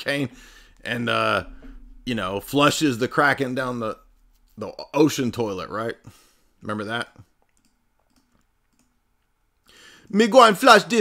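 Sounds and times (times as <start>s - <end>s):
faint clicks: 7.4s - 9.3s.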